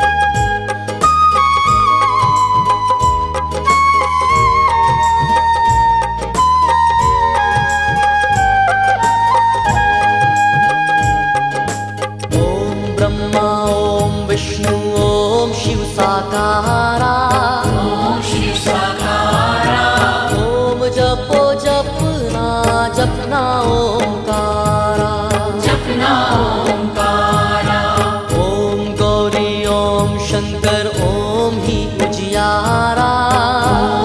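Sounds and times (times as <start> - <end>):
instrumental accompaniment: 0.0 - 34.0
percussion beat: 0.0 - 34.0
man singing a chant: 12.4 - 19.0.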